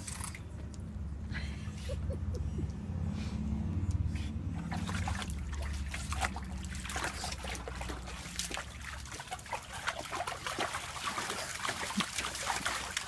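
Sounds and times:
water sloshing and splashing: 0:03.8 - 0:13.0.

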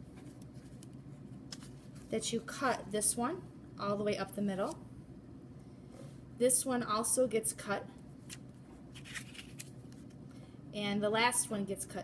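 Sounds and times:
paper rustling: 0:08.3 - 0:10.1.

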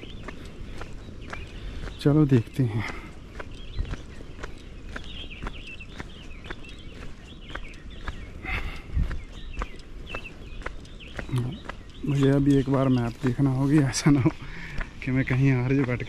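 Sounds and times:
footsteps on paved road: 0:00.0 - 0:16.0.

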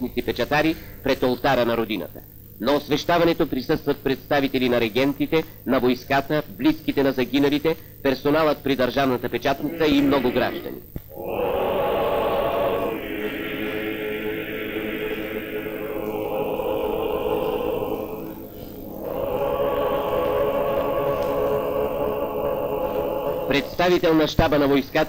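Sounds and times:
church choir chanting: 0:09.5 - 0:25.0.

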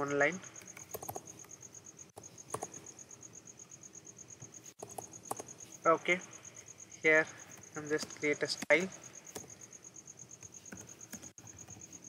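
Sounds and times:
cricket chirping: 0:00.0 - 0:12.0
keyboard clicks: 0:00.6 - 0:01.5, 0:02.2 - 0:02.9, 0:04.8 - 0:05.5, 0:07.9 - 0:09.6, 0:10.4 - 0:11.8.

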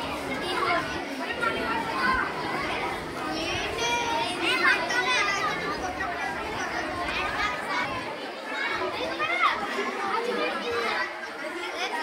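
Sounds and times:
children talking at once: 0:00.0 - 0:12.0.

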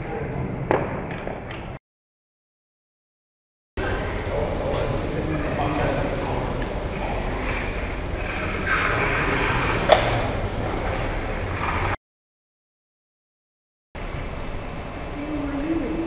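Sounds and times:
low room rumble: 0:03.8 - 0:12.0, 0:14.0 - 0:16.0.

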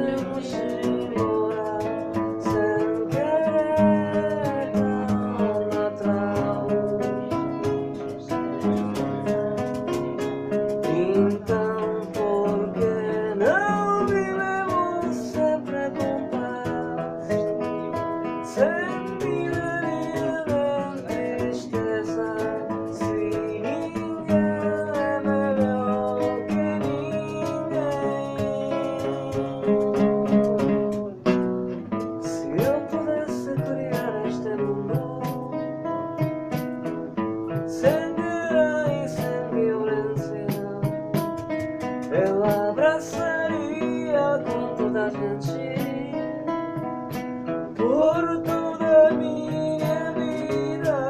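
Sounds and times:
person singing long notes: 0:00.0 - 0:08.3, 0:10.3 - 0:30.9
classical guitar fingerpicking: 0:00.0 - 0:51.0.

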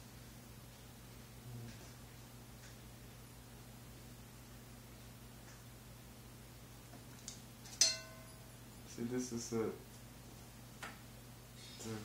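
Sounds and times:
brush handle clinking on ceramic: 0:07.8 - 0:08.4.

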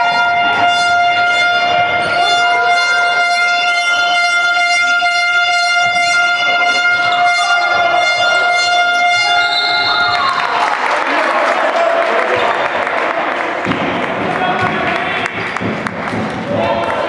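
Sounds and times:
horn steady tone: 0:00.0 - 0:10.4
crowd noise: 0:00.0 - 0:17.0.

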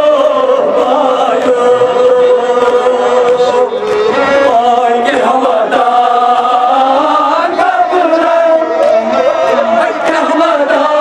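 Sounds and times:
men chanting through microphones: 0:00.0 - 0:11.0.

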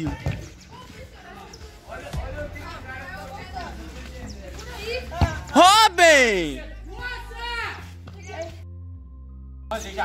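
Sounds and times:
players calling out: 0:05.3 - 0:07.4.

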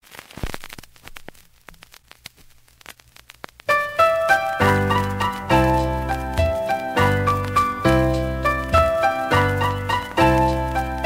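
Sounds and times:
vinyl record crackle and pops: 0:00.0 - 0:11.0
record music: 0:00.1 - 0:11.0.

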